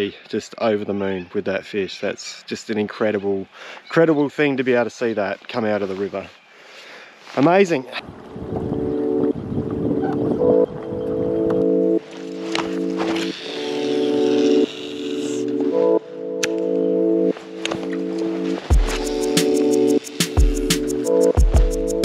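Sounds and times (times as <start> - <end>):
sustained chords: 8.1 - 22.0
beat of ticks and bass thumps: 18.7 - 22.0.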